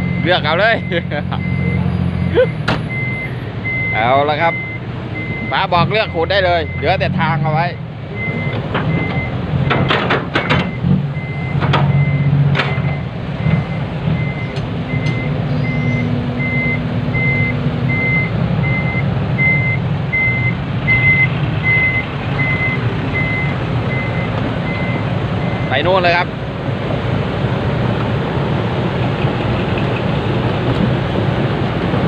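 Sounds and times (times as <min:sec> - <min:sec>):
reversing alarm beeping: 0:00.0 - 0:07.1, 0:08.1 - 0:26.2
diesel engine running: 0:00.0 - 0:32.0.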